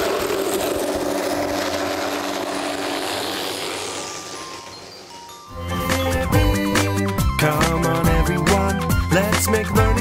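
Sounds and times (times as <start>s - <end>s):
helicopter engine and rotor: 0.0s - 7.2s.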